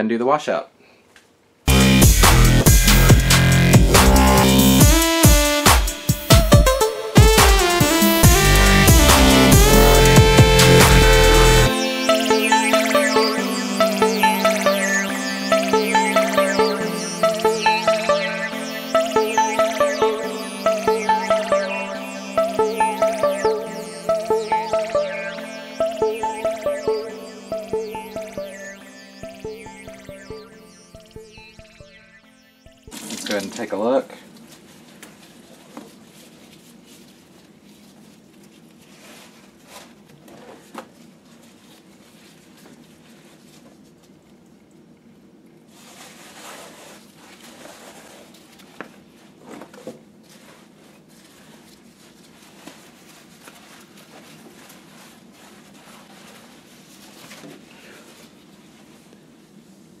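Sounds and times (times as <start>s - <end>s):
background music: 1.7s - 33.2s
wavering voice-like pitched sound: 6.9s - 32.9s.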